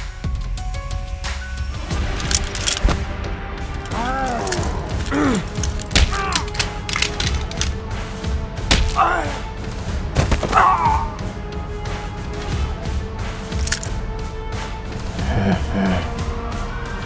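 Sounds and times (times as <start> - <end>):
dramatic background music: 0.0 - 17.0
short strained grunts: 3.9 - 6.5.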